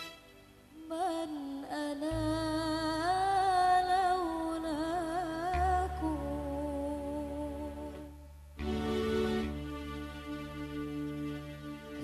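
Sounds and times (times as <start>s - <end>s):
low steady bass tone: 2.1s - 12.0s.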